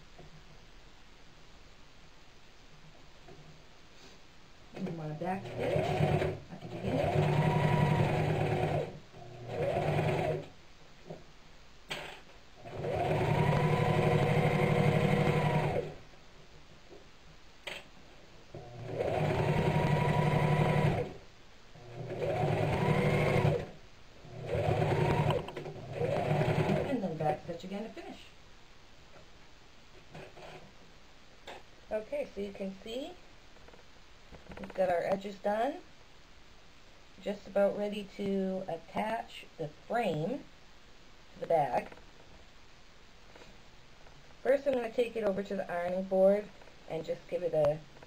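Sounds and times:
sewing machine stitching: 4.8 - 10.5, 11.9 - 16.0, 18.6 - 21.2, 21.8 - 27.0.

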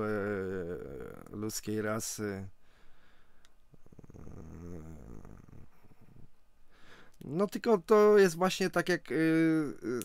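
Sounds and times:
man humming mmm: 0.0 - 1.4, 3.8 - 6.3.

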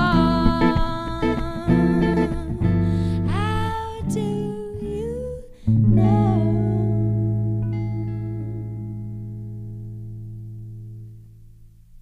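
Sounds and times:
guitar chord ringing out: 5.7 - 11.9.

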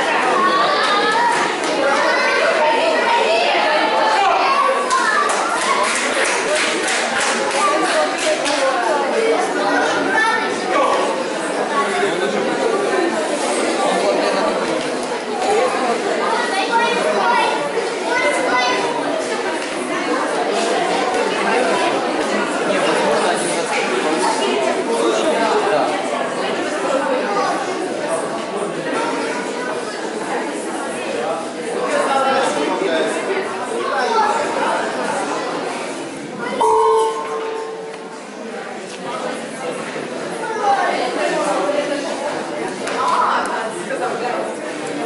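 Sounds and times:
spectators chattering in a hall: 0.0 - 45.0.

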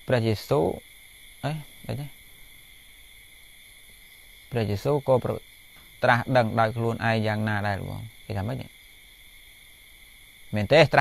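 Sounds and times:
man speaking: 0.0 - 0.8, 1.4 - 2.2, 4.5 - 5.4, 6.0 - 8.7, 10.6 - 11.0
high-pitched hiss: 0.0 - 11.0.

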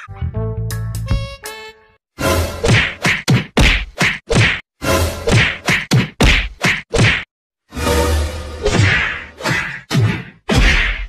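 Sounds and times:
comedy whack sound effect: 2.6 - 4.6, 5.2 - 7.3, 8.6 - 11.0.

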